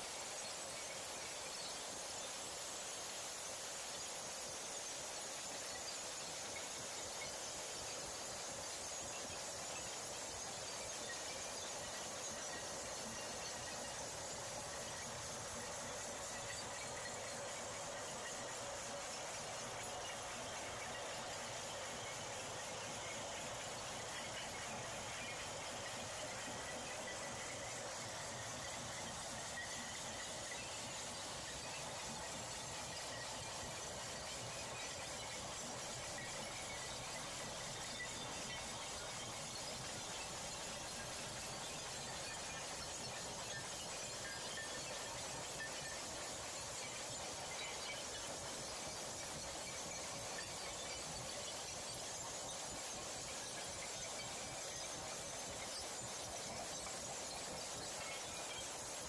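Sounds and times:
faint high whine: 0.0s - 59.0s.

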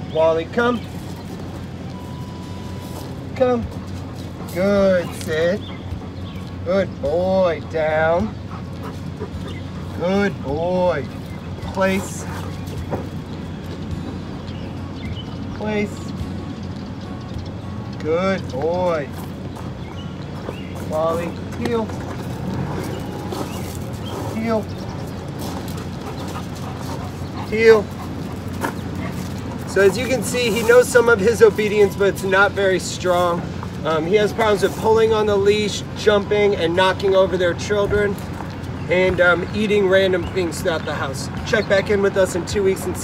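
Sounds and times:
outdoor background noise: 0.0s - 43.0s.

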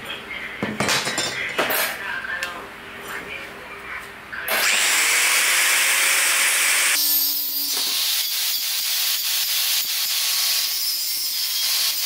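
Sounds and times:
metal tools clinking and knocking: 0.8s - 2.0s.

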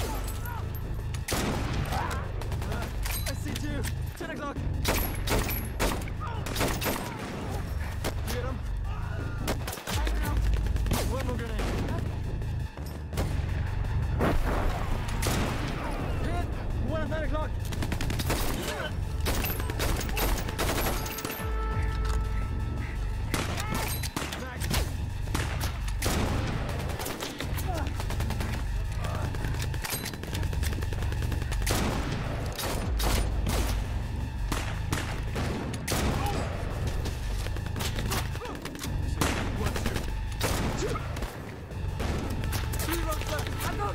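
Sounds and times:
gunshots: 1.2s - 4.1s, 4.7s - 8.5s, 9.4s - 12.2s, 14.1s - 16.2s, 17.6s - 22.3s, 22.9s - 43.9s.

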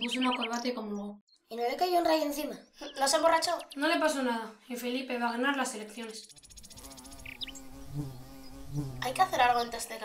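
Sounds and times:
bird chirps: 0.0s - 10.0s
insect buzzing: 5.9s - 10.0s.

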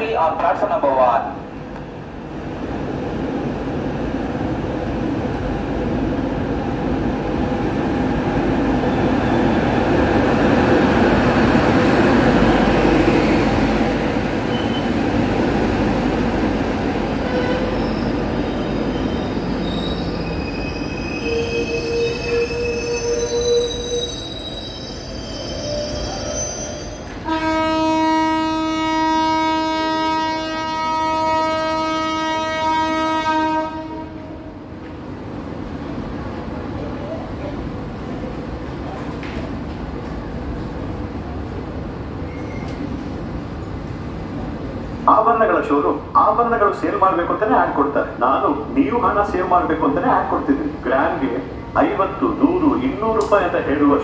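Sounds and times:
wheels and brakes squealing: 14.4s - 15.0s, 17.3s - 27.2s, 42.2s - 43.1s
train horn long blast: 17.2s - 17.8s, 27.2s - 34.5s
train wheels rumbling on rails: 34.6s - 54.0s.

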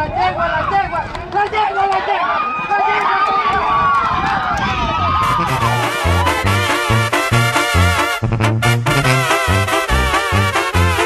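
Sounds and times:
men yelling: 0.0s - 6.8s
low rumble: 5.2s - 8.6s.

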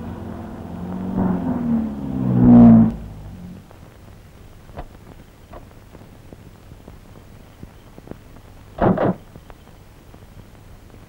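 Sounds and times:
car engine pulling to a stop: 0.0s - 3.7s.

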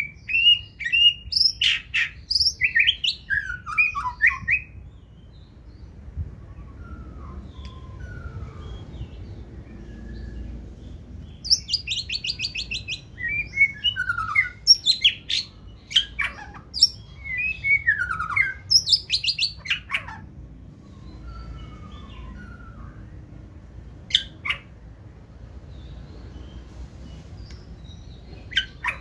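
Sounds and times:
bird singing whistles: 0.0s - 4.8s, 6.4s - 10.6s, 11.4s - 19.9s, 20.9s - 23.4s.

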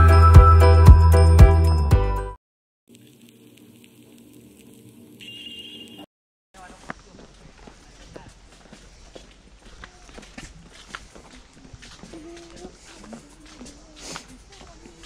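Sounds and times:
thin high tone: 5.2s - 6.1s
distant voices: 6.6s - 15.0s
footsteps on a path: 6.6s - 15.0s.

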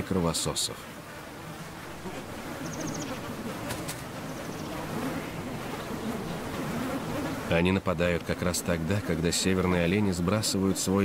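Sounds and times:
swarm of mosquitoes buzzing: 0.0s - 11.0s.

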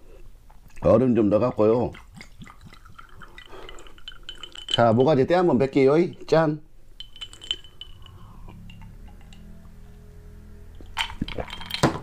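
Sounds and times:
liquid glugging from glass bottle: 0.7s - 6.4s.

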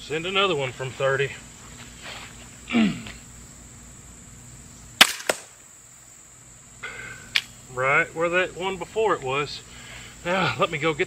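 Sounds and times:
bolt striking target: 5.0s - 5.6s
crossbow firing crack: 5.0s - 5.6s.

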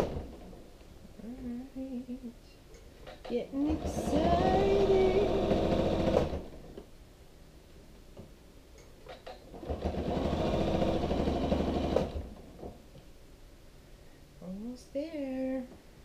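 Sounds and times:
sewing machine stitching: 3.3s - 6.6s, 9.1s - 12.4s.

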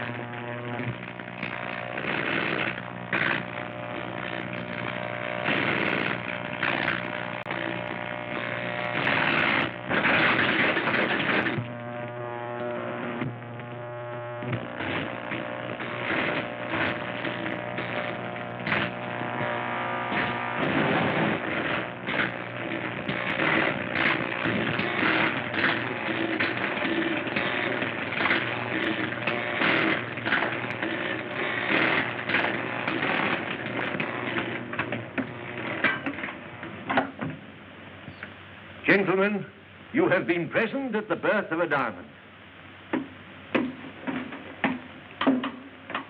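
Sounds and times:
crackling electric arcs: 0.0s - 37.2s
steady electrical hum: 0.0s - 46.0s.

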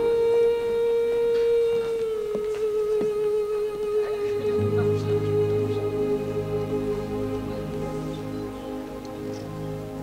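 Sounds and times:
instrumental music long note: 0.0s - 10.0s.

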